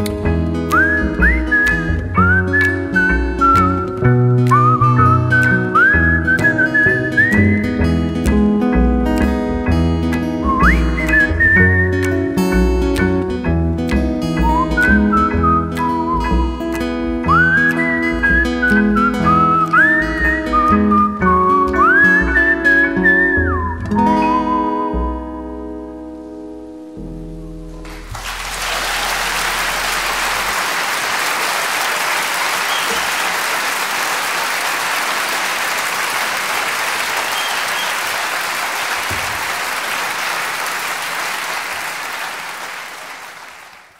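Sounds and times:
plucked upright bass: 0.0s - 19.7s, 20.3s - 28.6s
acoustic guitar chords: 0.0s - 30.5s
whistled melody: 0.6s - 7.9s, 10.4s - 12.4s, 14.4s - 25.6s, 32.6s - 33.0s, 37.2s - 38.1s
strummed acoustic guitar: 7.0s - 21.6s.

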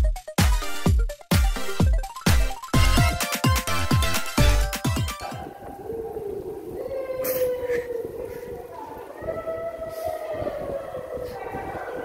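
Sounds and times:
bicycle tyre noise: 5.5s - 11.4s.

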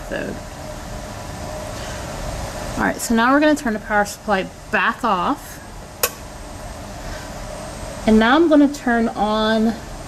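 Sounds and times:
room ventilation noise: 0.0s - 10.0s
power switch click: 6.0s - 6.2s.

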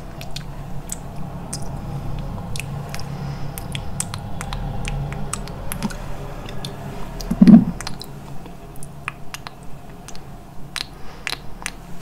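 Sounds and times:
wet mouth clicks: 0.2s - 1.7s, 7.2s - 11.9s.

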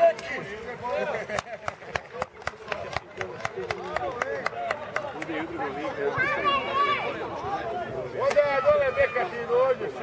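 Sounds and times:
men talking: 0.0s - 10.0s
hands clapping in rhythm: 1.4s - 5.3s.

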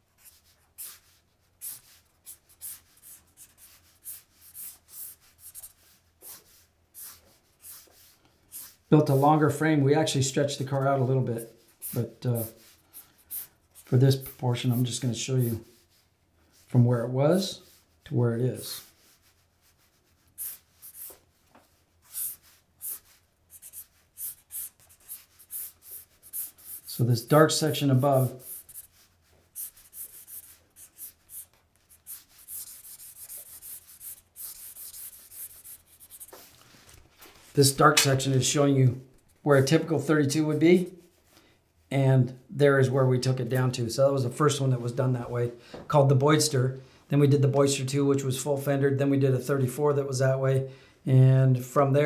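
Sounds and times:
marker strokes on paper: 0.0s - 16.8s, 17.4s - 38.4s.

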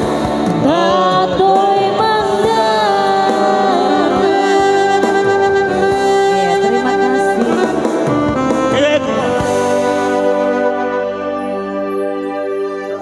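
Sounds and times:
person singing into microphone: 0.0s - 10.2s
electronic keyboard: 0.0s - 13.0s
saxophone-like melody: 0.0s - 13.0s.

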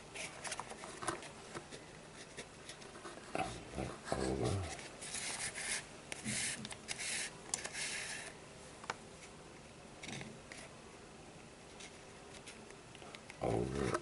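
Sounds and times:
small clicks and rustling hisses: 0.1s - 9.4s, 11.6s - 14.0s.

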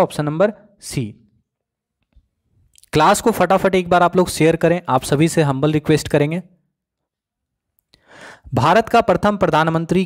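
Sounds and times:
man speaking: 0.0s - 1.3s, 2.8s - 6.5s, 8.5s - 10.0s.

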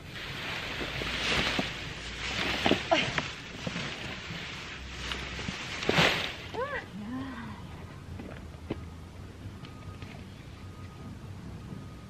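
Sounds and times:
leafy vines rustling on grass: 0.0s - 7.2s.

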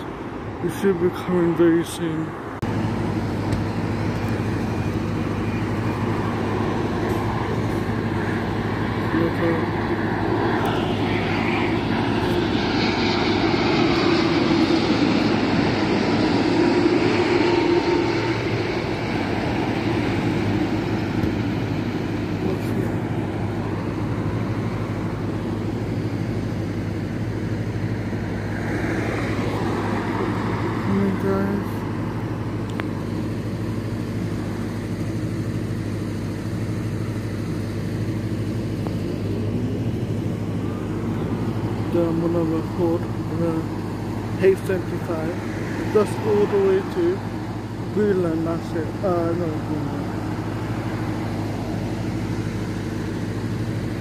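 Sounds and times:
jet airliner engine drone: 0.0s - 54.0s
steady low rumble: 0.0s - 54.0s.

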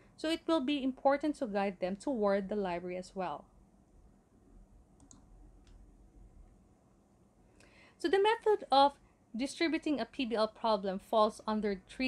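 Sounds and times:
small clicks: 5.0s - 5.8s.

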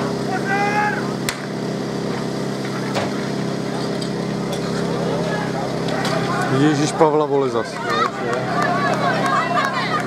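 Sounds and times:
pump engine running: 0.0s - 10.0s
faint crowd voices: 2.7s - 10.0s.

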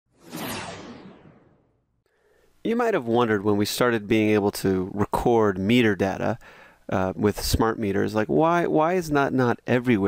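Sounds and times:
whoosh: 0.1s - 2.0s.

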